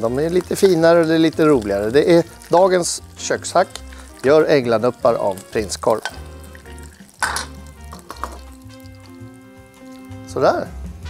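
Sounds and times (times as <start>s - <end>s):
background music with held notes: 0.0s - 11.0s
metal tongs clattering on pan: 7.2s - 8.4s.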